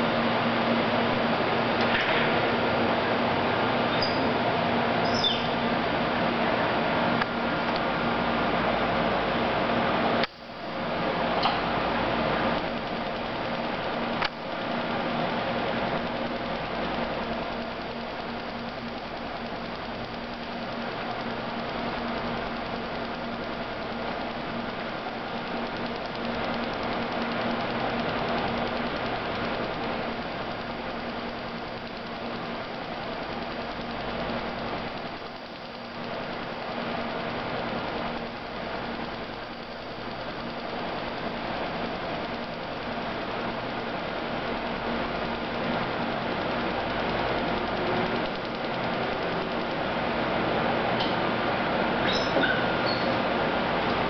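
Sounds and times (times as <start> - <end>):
machine running with low hum: 0.0 - 54.0.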